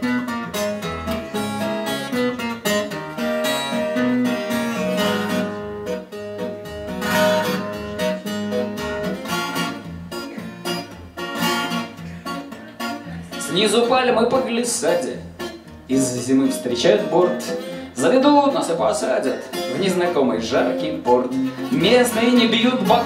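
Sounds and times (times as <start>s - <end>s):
acoustic guitar strumming: 0.0s - 23.0s.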